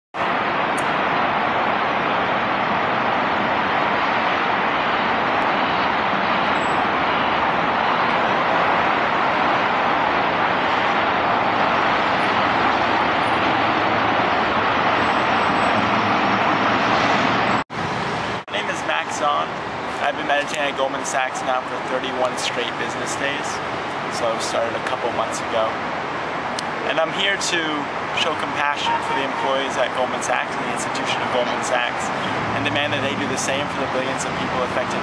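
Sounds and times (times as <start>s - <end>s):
city street traffic roar: 0.2s - 35.0s.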